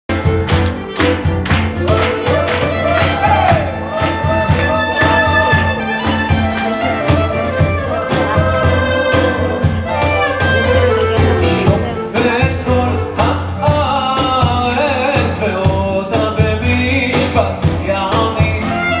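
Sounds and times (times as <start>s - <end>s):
clarinet melody: 0.1s - 14.1s
cajon beat: 0.1s - 19.0s
man singing: 1.8s - 6.1s, 7.4s - 10.5s, 11.2s - 19.0s.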